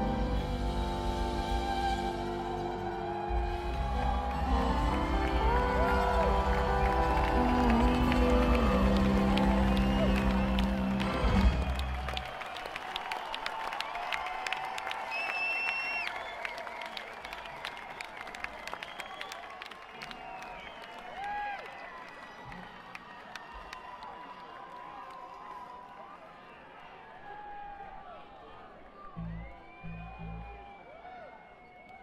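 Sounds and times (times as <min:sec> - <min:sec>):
rock band with fiddle: 0:00.0 - 0:11.9
audience applauding and cheering: 0:00.0 - 0:32.0.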